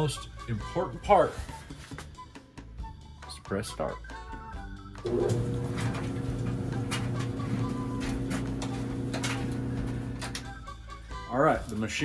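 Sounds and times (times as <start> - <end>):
clothes dryer humming: 5.0 - 10.6.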